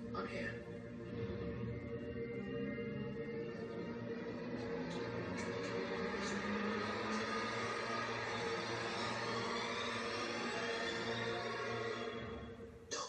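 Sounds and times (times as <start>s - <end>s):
droning sustained tones: 0.0s - 12.7s.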